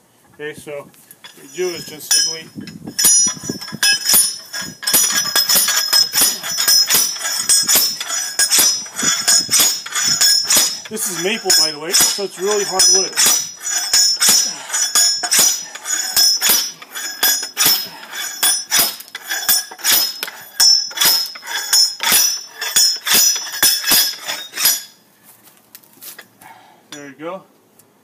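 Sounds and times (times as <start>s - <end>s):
log splitter metallic clanks: 1.2s - 25.0s.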